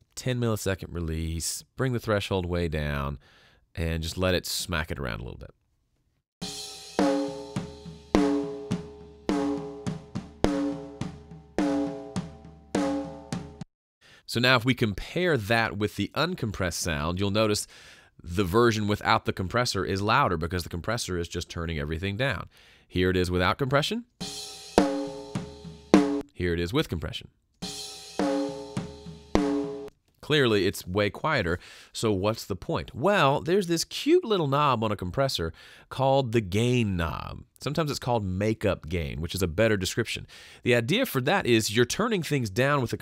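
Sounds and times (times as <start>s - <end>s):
compressed snare drum hits: 6.4s - 13.7s, 24.2s - 26.2s, 27.6s - 29.9s.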